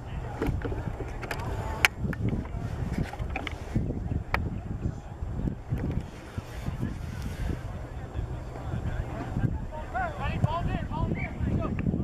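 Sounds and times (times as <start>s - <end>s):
distant voices: 0.0s - 12.0s
wind buffeting microphone: 0.0s - 12.0s.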